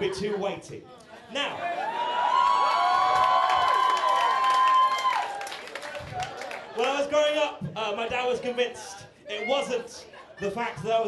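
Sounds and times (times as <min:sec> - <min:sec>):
audience cheering: 0:01.5 - 0:07.3
long whoops: 0:01.7 - 0:05.6.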